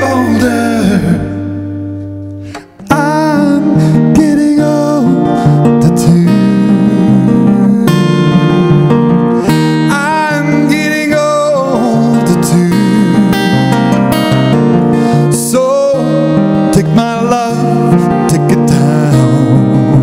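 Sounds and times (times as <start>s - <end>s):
man singing: 0.0s - 1.6s, 2.8s - 13.8s, 15.1s - 20.0s
acoustic guitar strumming: 0.0s - 20.0s.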